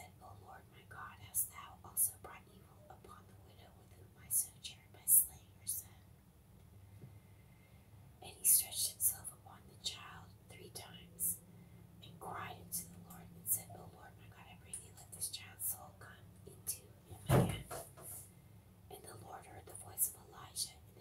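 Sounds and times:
person whispering: 0.0 - 6.0, 8.2 - 11.4, 12.0 - 18.2, 18.9 - 21.0.

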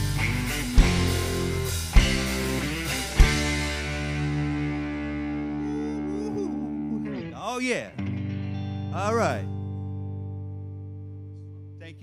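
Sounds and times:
rock band accented chords: 0.0 - 12.0.

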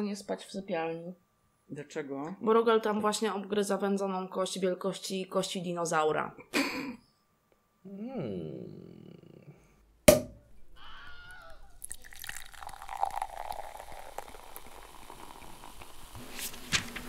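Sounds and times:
sharp pop: 10.1 - 10.4
liquid pouring into a glass: 11.7 - 16.2.

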